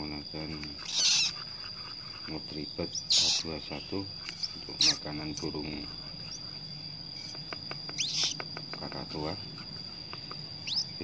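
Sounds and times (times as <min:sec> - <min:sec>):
bird chirp: 0:00.0 - 0:11.0.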